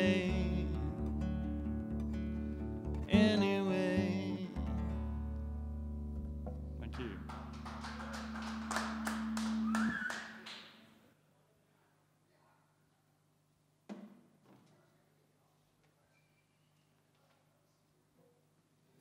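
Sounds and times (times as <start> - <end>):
acoustic guitar chords: 0.0 - 10.4
audience clapping: 6.8 - 10.9.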